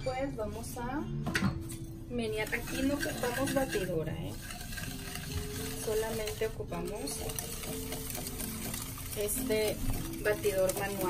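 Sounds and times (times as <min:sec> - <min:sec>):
whisk beating eggs in glass bowl: 0:02.3 - 0:11.0.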